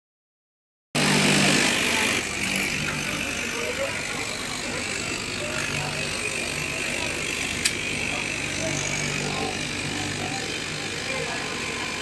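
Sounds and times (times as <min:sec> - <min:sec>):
blade cutting through cloth: 0:01.0 - 0:12.0
cutting machine motor humming: 0:01.0 - 0:12.0.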